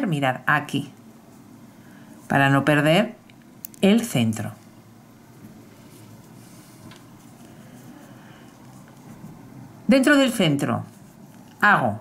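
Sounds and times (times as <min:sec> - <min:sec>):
crochet hook and yarn handling: 0:10.8 - 0:11.7.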